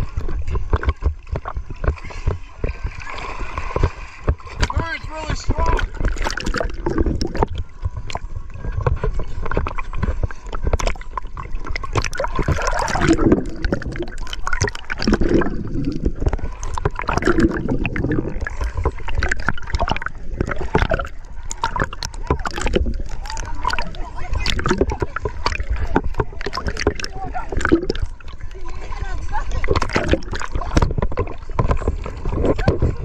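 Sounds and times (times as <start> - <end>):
sea water sloshing and splashing: 0.0 - 33.0.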